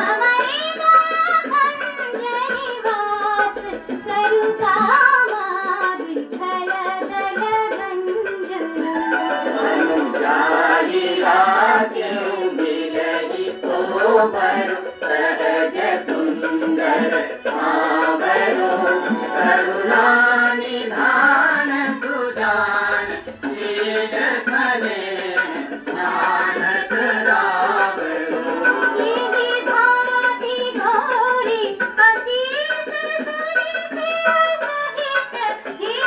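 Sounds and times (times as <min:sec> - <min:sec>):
devotional song on an old record: 0:00.0 - 0:36.0
instrumental accompaniment: 0:00.0 - 0:36.0
high voice singing: 0:21.7 - 0:30.0.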